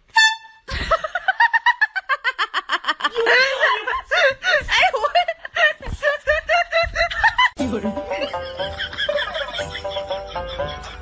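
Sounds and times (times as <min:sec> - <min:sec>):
person laughing: 0:00.7 - 0:11.0.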